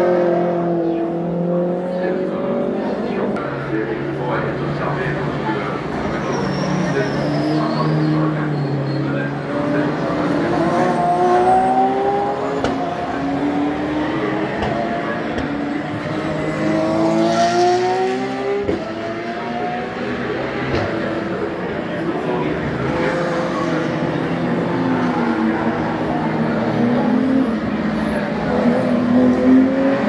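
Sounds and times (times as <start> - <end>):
race car engine accelerating: 0.0 - 30.0.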